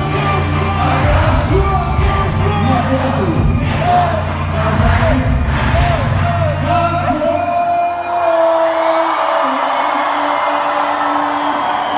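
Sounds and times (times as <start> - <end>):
crowd cheering and yelling: 0.0 - 11.9
live concert music with bass beat: 0.0 - 11.9.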